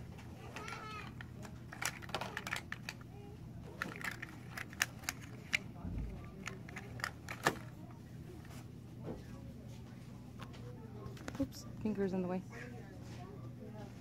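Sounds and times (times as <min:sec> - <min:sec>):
steady low hum: 0:00.0 - 0:14.0.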